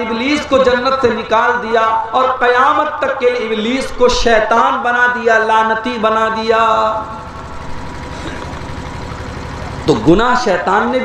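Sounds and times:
engine running with fast pulse: 0.0s - 11.0s.

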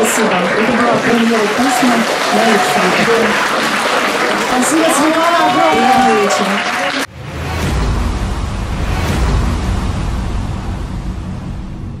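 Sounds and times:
whooshing with deep rumble: 7.2s - 12.0s.

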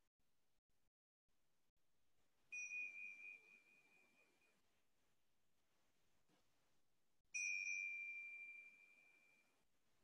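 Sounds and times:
small bell ringing: 2.5s - 4.6s, 7.3s - 9.7s.

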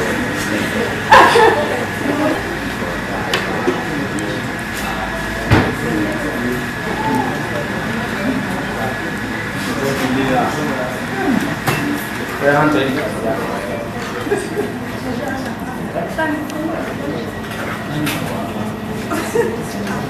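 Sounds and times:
people chattering: 0.0s - 20.0s.

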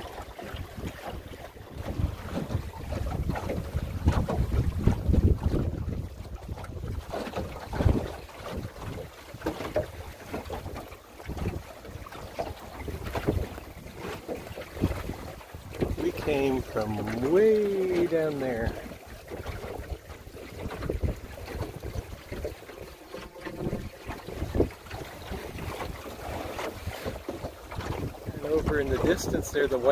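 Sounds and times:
water splashing along hull: 0.0s - 29.9s
wind buffeting microphone: 0.0s - 29.9s.

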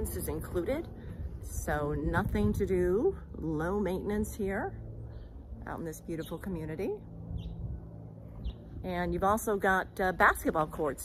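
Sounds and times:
woman's voice: 0.0s - 4.8s, 5.6s - 7.1s, 8.8s - 11.0s
low steady rumble: 0.0s - 11.0s.

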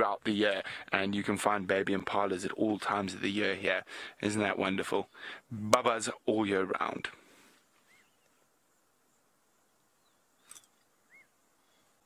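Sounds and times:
short bird calls: 7.4s - 8.5s, 9.9s - 12.0s.

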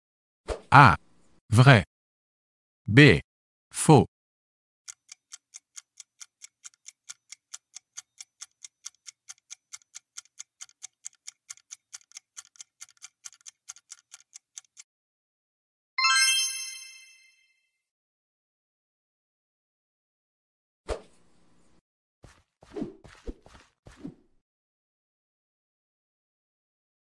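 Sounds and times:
bright chime ringing: 16.0s - 17.5s.

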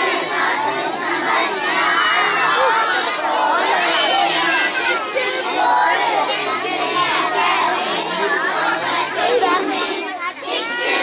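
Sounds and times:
crowd of children shouting: 0.0s - 11.0s.

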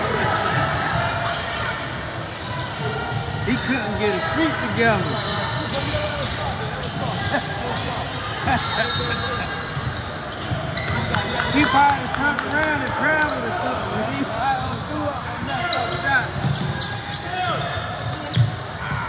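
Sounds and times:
sneakers squeaking on hardwood: 0.0s - 11.9s, 12.7s - 19.0s
voices calling out: 0.0s - 19.0s.

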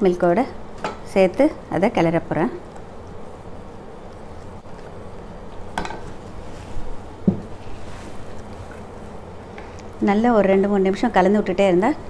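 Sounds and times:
dull knock: 7.2s - 7.5s.

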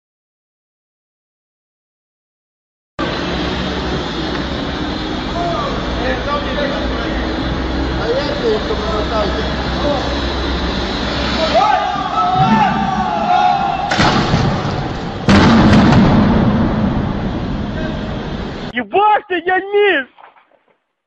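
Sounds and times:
loud burst of noise: 3.0s - 18.7s
noisy background: 3.0s - 20.2s
voices: 3.6s - 14.0s, 17.7s - 20.3s
loud crash: 11.0s - 18.7s.

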